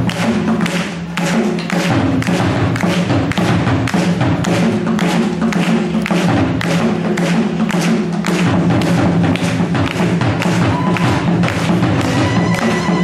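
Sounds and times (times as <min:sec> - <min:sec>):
hand drum playing: 0:00.0 - 0:13.0
upright drums struck with sticks: 0:00.0 - 0:13.0.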